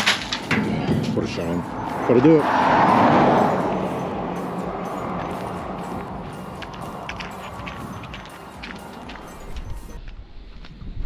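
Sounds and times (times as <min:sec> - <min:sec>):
vehicle passing on highway: 0:00.2 - 0:10.0
footsteps on gravel: 0:03.7 - 0:10.8.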